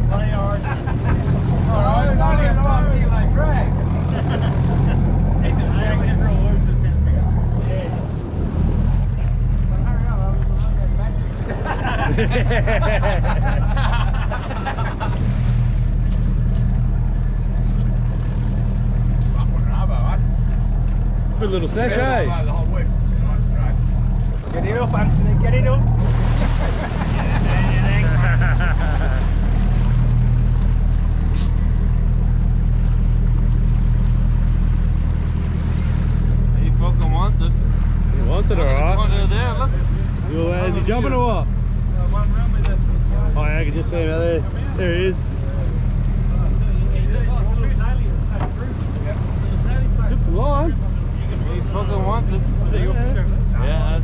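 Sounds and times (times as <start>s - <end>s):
boat engine humming: 0.0s - 54.0s.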